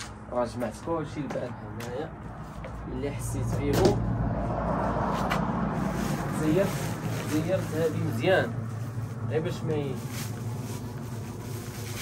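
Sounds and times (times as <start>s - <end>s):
steady low rumble: 0.0s - 12.0s
plastic bags rustling: 5.7s - 12.0s.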